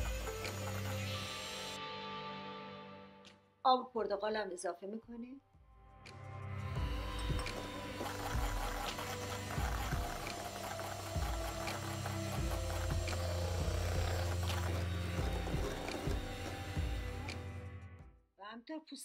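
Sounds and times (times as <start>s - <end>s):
electric hand mixer running: 0.0s - 1.8s, 6.8s - 17.6s
background music: 0.0s - 4.7s, 5.4s - 18.2s.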